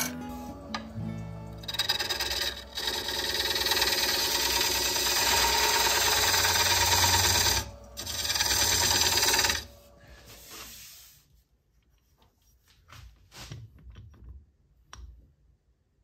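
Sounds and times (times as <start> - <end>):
lathe tool scraping wood: 0.0 - 11.0.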